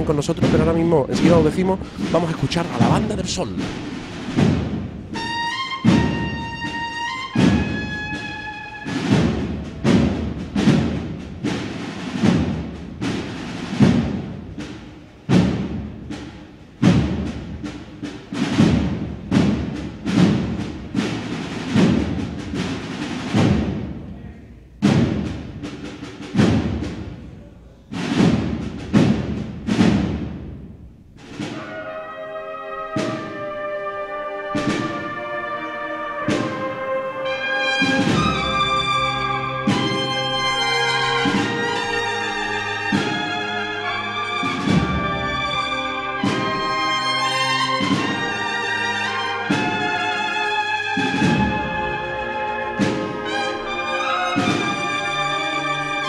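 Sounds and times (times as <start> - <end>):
drum strikes: 0.0 - 32.0, 32.7 - 56.0
cornets playing sustained chords: 5.1 - 9.6, 31.4 - 56.0.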